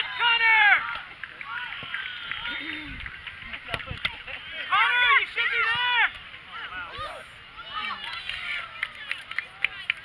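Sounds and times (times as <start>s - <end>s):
outdoor field noise: 0.0s - 10.0s.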